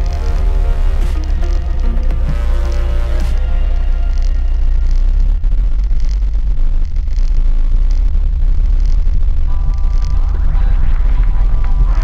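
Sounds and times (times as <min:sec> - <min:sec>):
background music with beat: 0:00.0 - 0:05.7.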